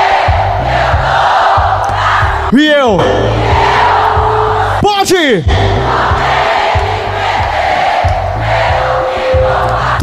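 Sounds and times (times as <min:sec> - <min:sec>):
crowd noise: 0:00.0 - 0:04.9
deep bass beats: 0:00.0 - 0:10.0.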